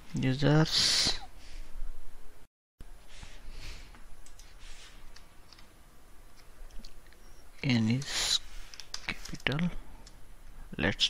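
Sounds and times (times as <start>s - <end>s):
man speaking: 0.1s - 1.3s.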